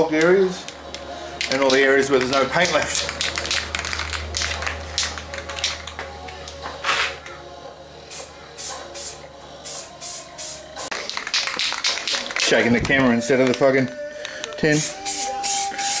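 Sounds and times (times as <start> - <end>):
aerosol spray can hissing: 8.1 - 11.0, 14.7 - 16.0.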